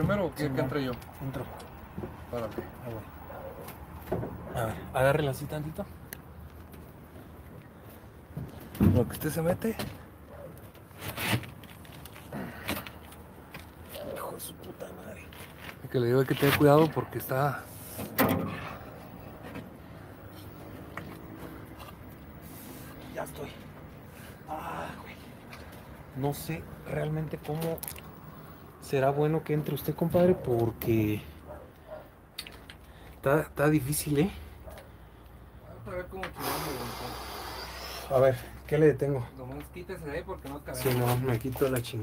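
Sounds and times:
shuffling and handling noise: 9.8s - 14.2s, 15.0s - 17.0s.

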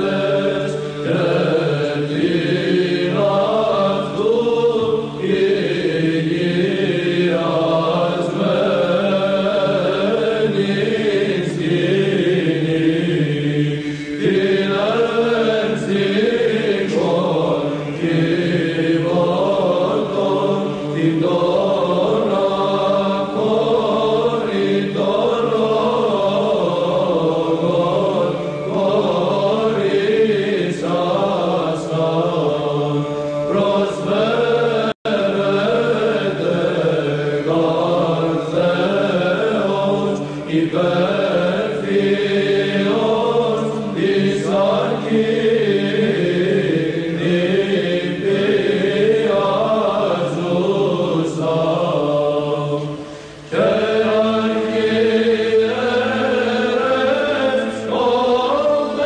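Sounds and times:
held vocal drone: 0.0s - 59.0s
voices chanting a slow melody: 0.0s - 59.0s.

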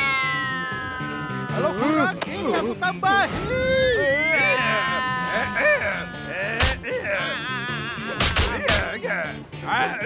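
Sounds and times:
wavering wordless vocal cry: 0.0s - 2.1s, 3.9s - 10.0s
cartoon background music: 0.0s - 10.0s.

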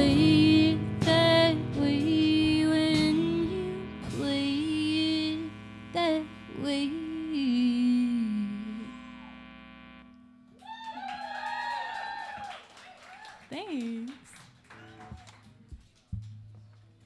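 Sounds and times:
acoustic guitar: 0.0s - 8.9s
woman singing: 0.0s - 9.2s
bass guitar: 0.0s - 10.6s
electric guitar: 0.0s - 10.6s
audience cheering: 10.6s - 15.5s.

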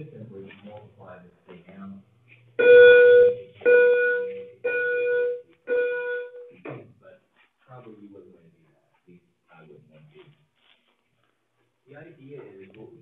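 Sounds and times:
loud electronic beeps: 2.6s - 6.5s.

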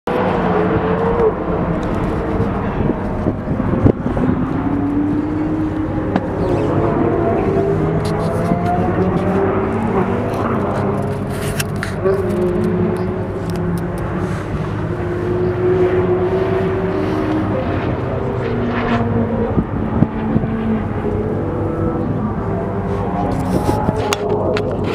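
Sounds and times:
sports car engines racing: 0.1s - 24.9s.

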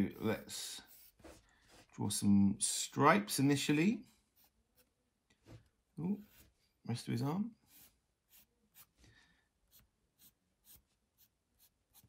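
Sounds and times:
pencil scratching on paper: 0.0s - 2.0s, 4.2s - 5.0s, 7.6s - 9.0s, 9.7s - 12.0s.

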